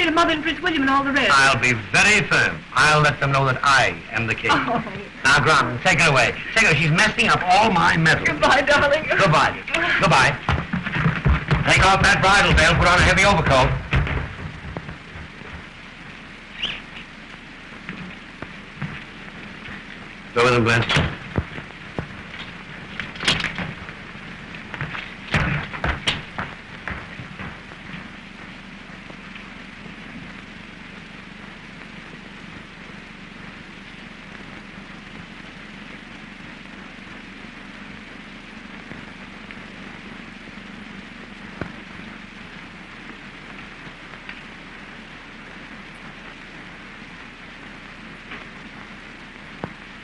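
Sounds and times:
film soundtrack hiss and hum: 0.0 - 50.0
knocks and rustles: 10.4 - 15.9, 17.8 - 19.9, 20.8 - 28.2.

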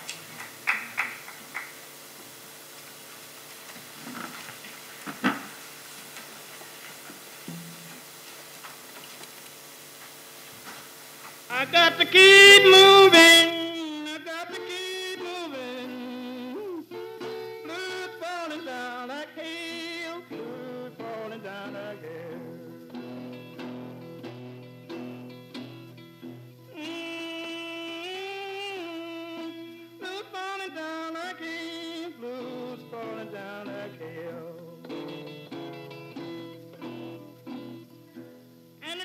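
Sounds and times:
acoustic guitar playing: 0.0 - 39.0
person singing: 11.5 - 24.4, 26.7 - 35.6, 38.8 - 39.0.

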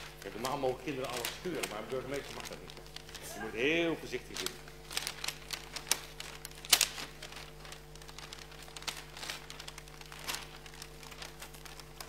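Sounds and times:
faint room hum: 0.0 - 12.0
wrapping paper crinkling: 0.0 - 12.0.

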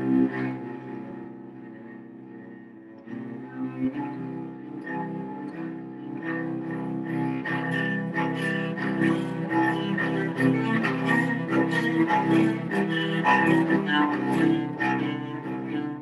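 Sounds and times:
bowed cello: 0.0 - 16.0.

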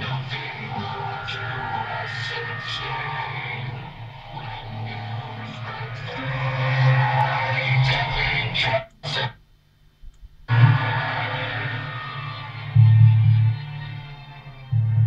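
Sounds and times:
music with guitar: 10.5 - 15.0.

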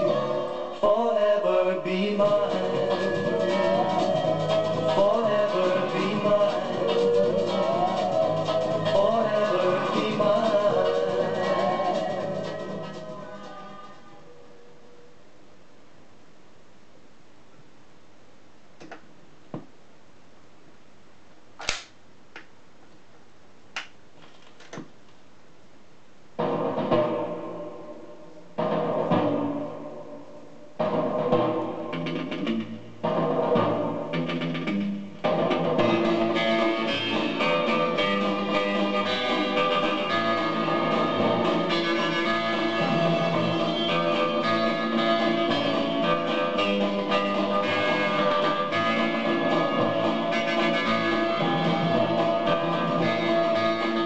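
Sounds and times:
instrumental music from record player: 0.0 - 14.8, 26.4 - 54.0
stylus clicks on record: 21.6 - 22.5.

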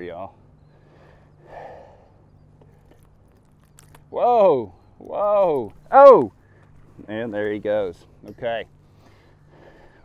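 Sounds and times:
steady low hum: 0.0 - 10.0
handling clicks and scrapes: 2.6 - 4.1.

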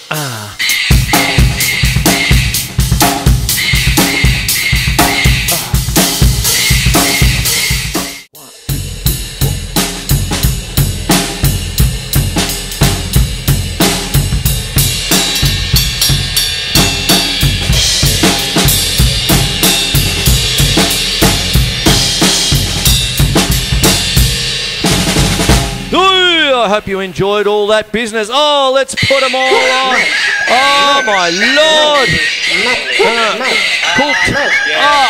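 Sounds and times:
acoustic drum kit playing: 0.0 - 27.0.

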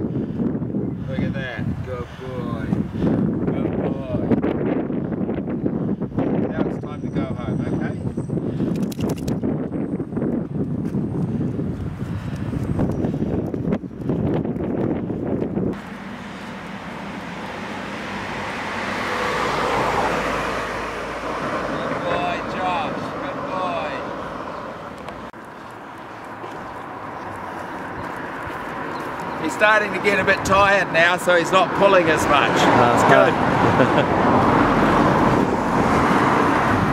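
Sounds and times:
wind rumbling on microphone: 0.0 - 36.9
car passing: 15.7 - 36.9.

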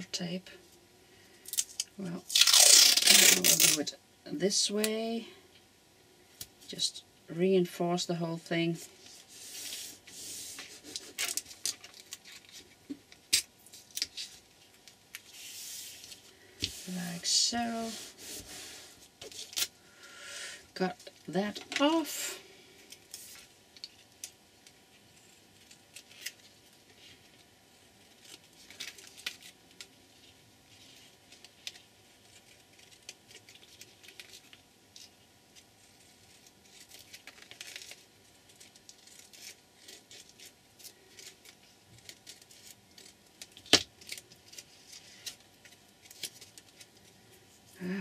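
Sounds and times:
tape and plastic rustling: 1.4 - 3.9, 8.7 - 19.8, 22.8 - 48.0.

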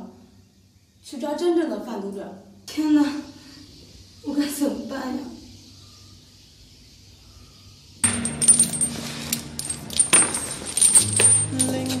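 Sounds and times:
low steady music tones: 7.8 - 12.0
chains clinking and jingling: 8.0 - 12.0.

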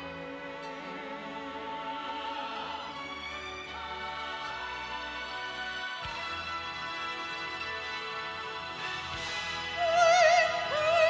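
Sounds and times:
orchestral hymn accompaniment: 0.0 - 11.0.

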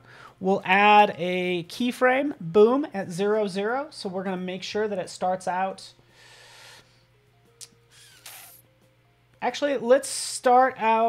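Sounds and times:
faint background music: 0.0 - 11.0
short hiss: 7.9 - 8.7.

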